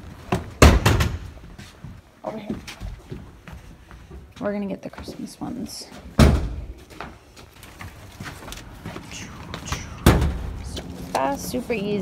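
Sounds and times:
door closing heavy thud: 6.2 - 6.7, 10.0 - 10.6.

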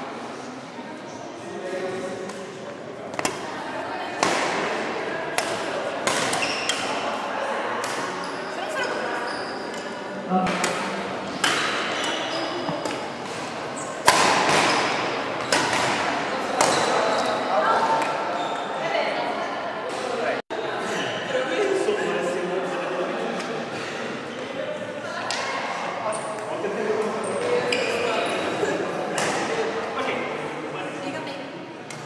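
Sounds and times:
rackets striking shuttlecocks: 5.3 - 7.0, 14.0 - 16.9.

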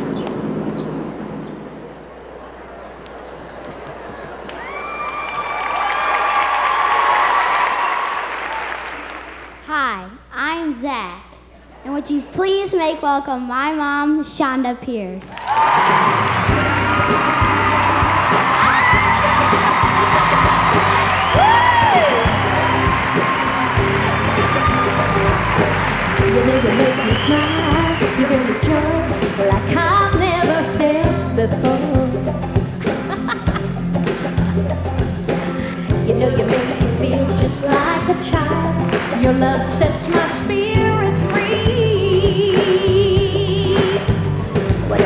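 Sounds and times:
crowd cheering: 2.2 - 9.6, 15.3 - 29.8
audience applauding: 3.3 - 9.6, 15.3 - 29.8, 38.8 - 39.3
high whoops: 4.5 - 8.8, 15.4 - 28.2
live band playing: 15.7 - 45.0
steady drum beat: 15.8 - 45.0.

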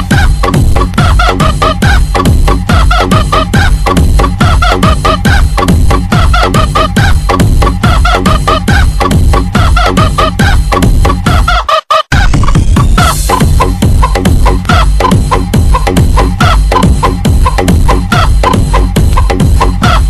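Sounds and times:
electronic dance music: 0.0 - 20.0
sampled chicken clucking: 0.0 - 20.0.

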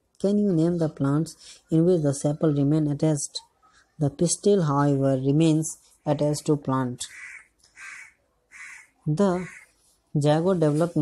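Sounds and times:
bird calling: 7.1 - 9.7.

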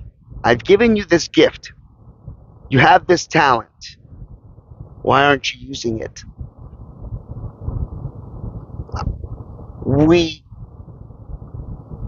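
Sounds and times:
low background rumble: 0.0 - 12.0
man's voice drawing out a word: 2.7 - 3.9, 5.1 - 6.2, 9.9 - 10.4.

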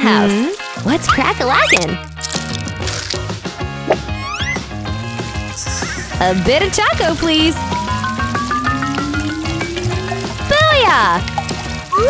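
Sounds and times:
background music: 0.0 - 12.0
rising whistle-like slide effect: 7.6 - 10.8.

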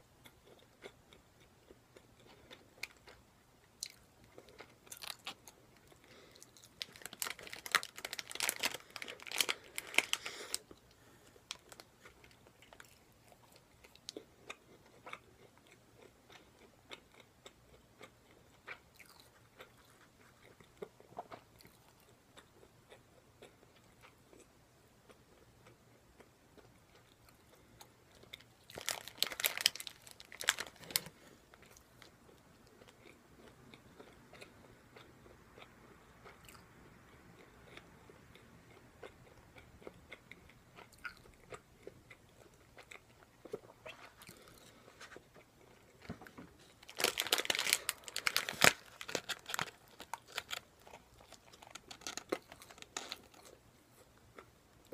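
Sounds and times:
chewing crunchy fried food: 0.2 - 54.9.

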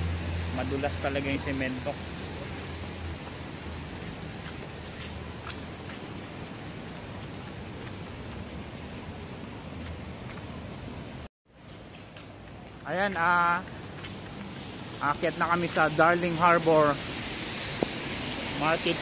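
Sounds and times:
low traffic hum: 0.0 - 19.0
rain on wet street: 0.0 - 19.0.

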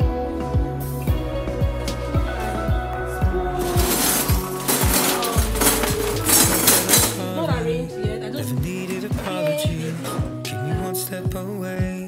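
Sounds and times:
pop music with steady beat: 0.0 - 12.0
kitchen utensils clattering: 3.6 - 7.8, 8.8 - 10.6.

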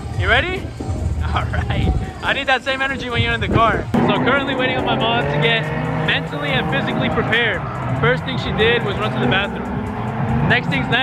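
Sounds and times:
man talking: 0.2 - 9.7, 10.4 - 11.0
car engine running: 3.1 - 11.0.

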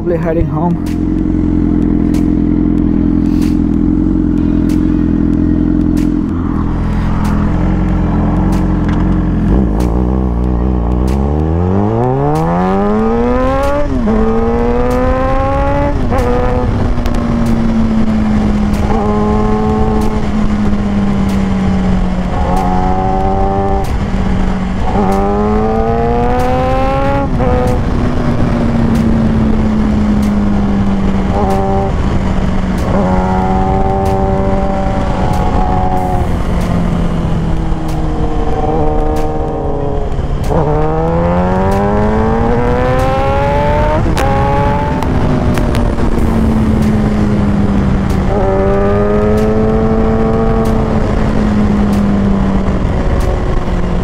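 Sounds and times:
motorcycle engine revving: 0.0 - 54.0
wind noise: 0.0 - 54.0.

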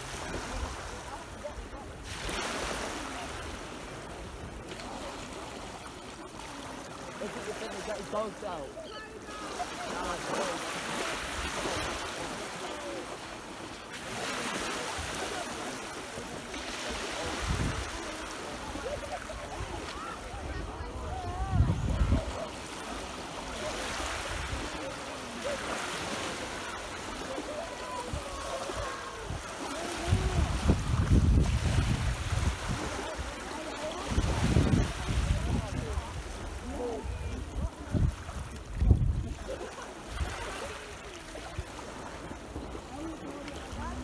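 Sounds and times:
small waves breaking on shore: 0.0 - 44.0
wind buffeting microphone: 20.3 - 22.4, 30.0 - 33.0, 34.1 - 39.4.

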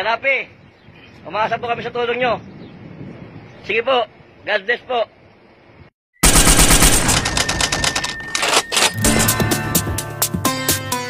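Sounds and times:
loud fast clicking rattle: 6.2 - 9.0
sharp strikes: 6.2 - 10.9.

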